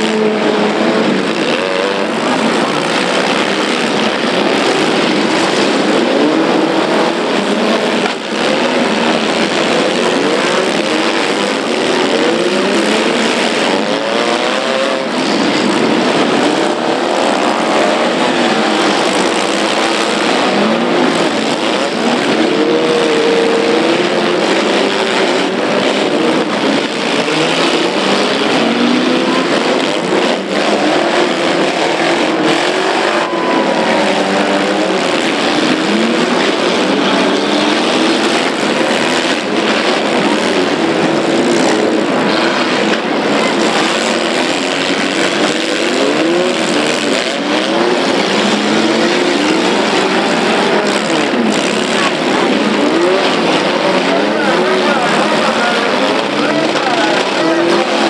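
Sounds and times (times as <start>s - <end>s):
many car engines revving: 0.0s - 58.0s.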